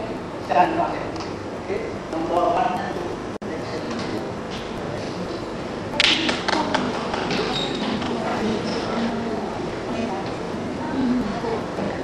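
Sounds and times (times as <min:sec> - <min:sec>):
group talking in echoing hall: 0:00.0 - 0:12.0.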